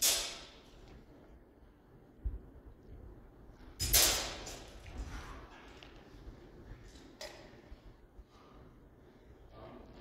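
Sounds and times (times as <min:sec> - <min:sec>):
steel blades clashing: 0:00.0 - 0:00.6.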